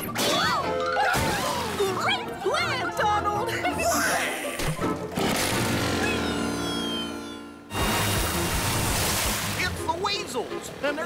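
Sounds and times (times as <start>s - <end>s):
cartoon background music: 0.0s - 11.0s
splashing water rush: 7.8s - 11.0s.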